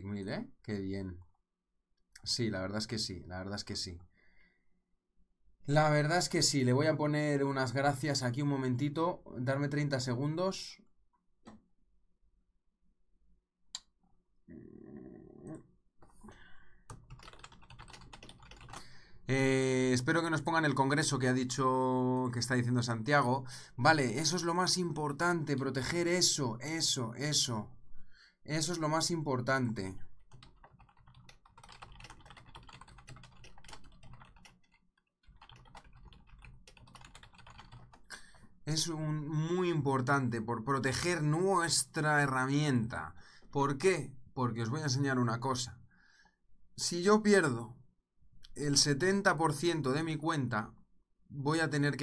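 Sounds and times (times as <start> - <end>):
typing on computer keyboard: 16.9 - 18.9, 30.2 - 38.1.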